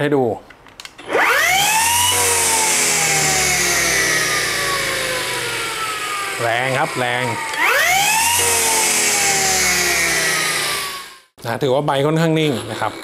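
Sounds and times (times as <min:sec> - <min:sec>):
grass trimmer motor whine: 0:01.0 - 0:11.3.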